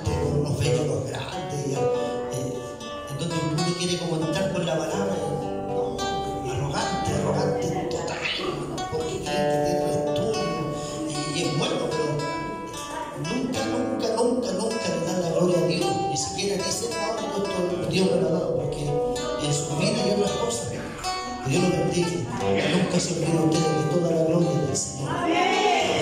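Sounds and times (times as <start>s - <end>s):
guitar accompaniment: 0.0s - 26.0s
man singing into a microphone: 6.4s - 18.7s, 19.4s - 25.1s.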